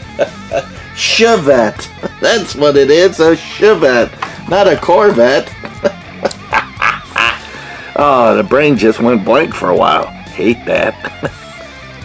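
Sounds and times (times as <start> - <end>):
man laughing: 0.0 - 2.6, 5.0 - 8.1, 10.6 - 11.6
background music: 0.0 - 12.0.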